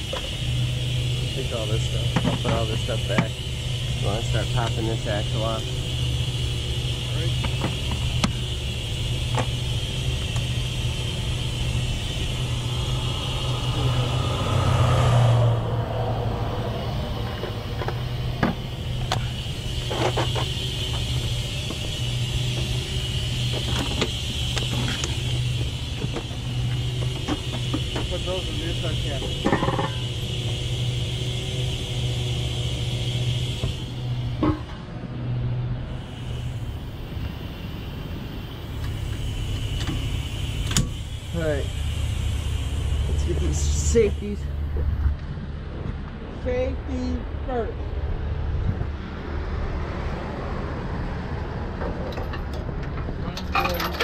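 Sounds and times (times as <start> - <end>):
heavy vehicle engine idling: 0.0 - 54.0.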